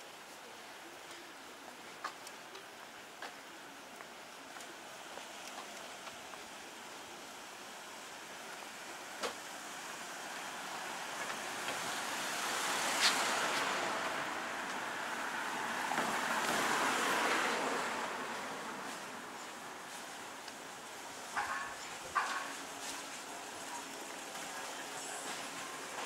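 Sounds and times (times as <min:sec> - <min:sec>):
car passing: 0:10.7 - 0:19.4.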